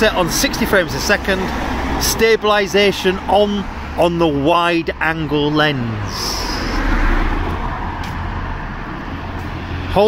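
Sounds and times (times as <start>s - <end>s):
car passing close by: 6.0s - 10.0s.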